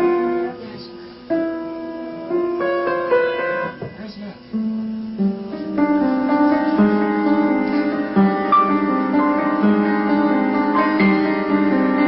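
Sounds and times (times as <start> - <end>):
upright piano playing: 0.0 - 12.0.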